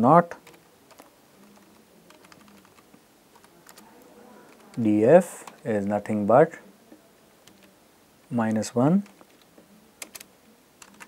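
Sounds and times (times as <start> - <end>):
computer keyboard clicks: 0.4 - 2.8, 3.4 - 3.8, 7.4 - 7.7, 9.0 - 11.0.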